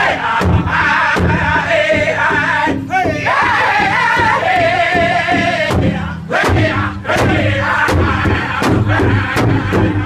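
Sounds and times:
large hand drum strikes: 0:00.0 - 0:10.0.

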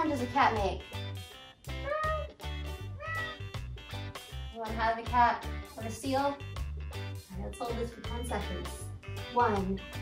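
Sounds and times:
background music with steady beat: 0:00.0 - 0:10.0
cat meowing: 0:01.8 - 0:03.5.

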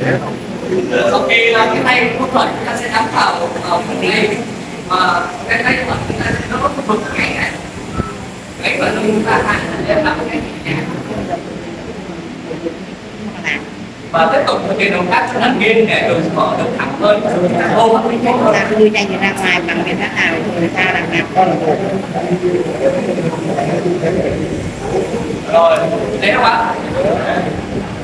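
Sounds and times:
man talking: 0:00.0 - 0:07.7, 0:08.6 - 0:11.5, 0:14.1 - 0:27.7
person lecturing: 0:00.0 - 0:27.7.

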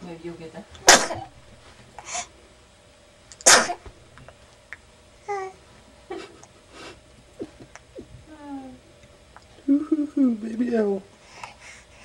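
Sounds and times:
baby sneezing: 0:00.8 - 0:01.4, 0:03.4 - 0:03.9.

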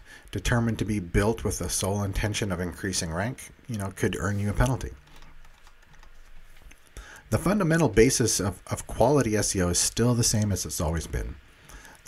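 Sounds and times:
low room noise: 0:00.0 - 0:12.0.

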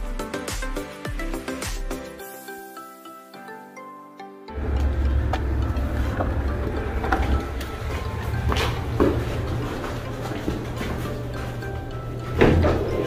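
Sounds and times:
background music: 0:00.0 - 0:13.0
low rumble: 0:04.6 - 0:10.1.

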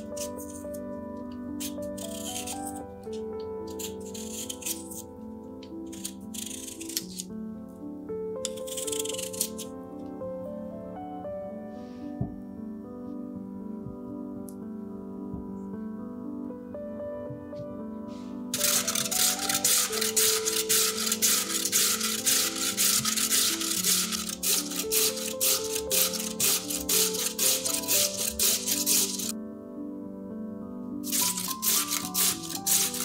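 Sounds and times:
peeler scraping potato: 0:00.0 - 0:00.6, 0:01.6 - 0:02.8, 0:03.7 - 0:05.1, 0:05.8 - 0:07.2, 0:08.5 - 0:09.7, 0:18.6 - 0:29.3, 0:31.1 - 0:33.0
soft piano music: 0:00.0 - 0:33.0.

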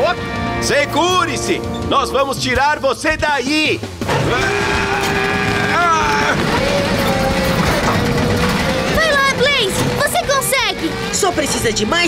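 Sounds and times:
background music: 0:00.0 - 0:12.0
cartoon truck engine straining: 0:04.0 - 0:12.0.

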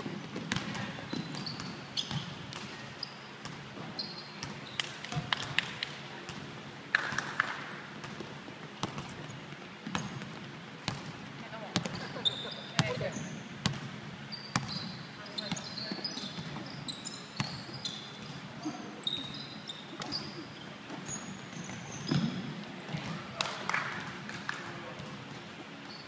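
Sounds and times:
sneakers squeaking on floor: 0:00.0 - 0:05.0, 0:08.8 - 0:11.0, 0:11.8 - 0:23.3, 0:25.0 - 0:26.0
basketball bouncing on wooden floor: 0:00.3 - 0:02.8, 0:08.0 - 0:11.1, 0:11.8 - 0:12.1, 0:12.8 - 0:16.7.

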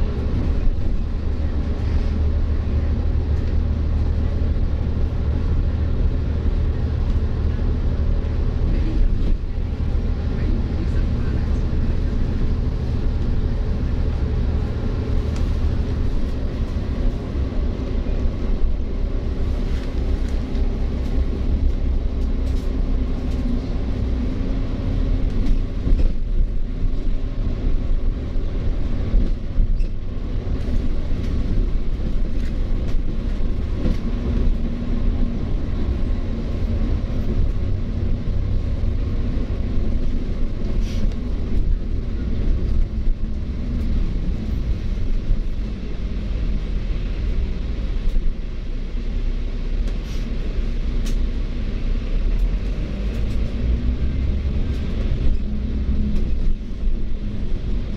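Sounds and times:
bus engine and road rumble: 0:00.0 - 0:57.9.

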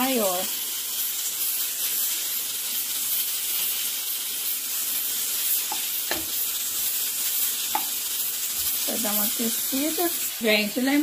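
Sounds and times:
bacon sizzling in hot oil: 0:00.0 - 0:11.0
spatula knocking against pan: 0:07.7 - 0:07.9.

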